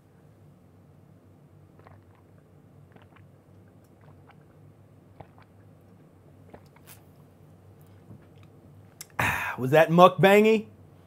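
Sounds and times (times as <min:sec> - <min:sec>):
sipping and swallowing mouth sounds: 0:01.7 - 0:07.2.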